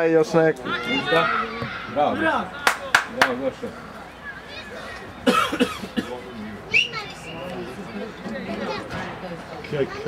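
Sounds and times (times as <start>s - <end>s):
person coughing: 5.3s - 6.2s.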